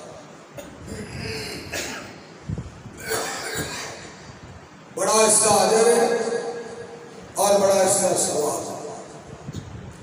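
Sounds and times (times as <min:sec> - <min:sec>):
man coughing: 0:00.6 - 0:02.2, 0:03.0 - 0:04.1.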